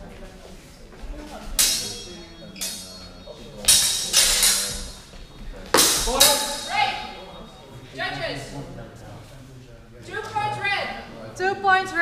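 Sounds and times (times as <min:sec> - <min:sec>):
steel blades clashing: 0:01.6 - 0:05.1, 0:05.8 - 0:07.1.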